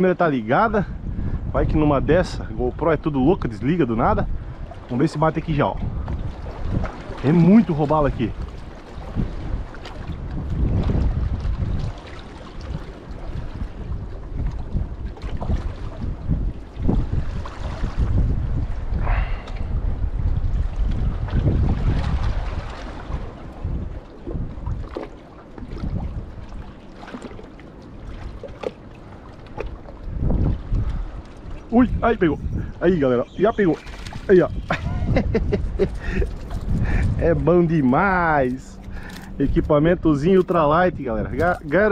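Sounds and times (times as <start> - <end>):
gusty wind buffeting microphone: 0.0 - 41.9
water lapping against rocks: 3.5 - 41.9.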